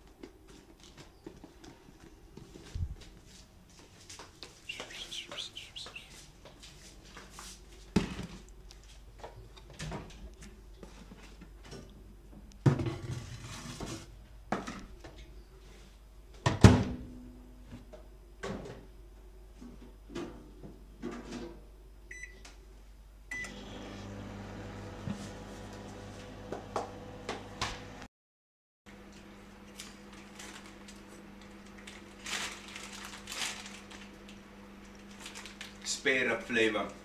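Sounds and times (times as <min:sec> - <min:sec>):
microwave keypad beeps: 0:22.1 - 0:22.4, 0:23.3 - 0:23.6
microwave humming: 0:23.3 - 0:28.1, 0:28.9 - 0:35.9.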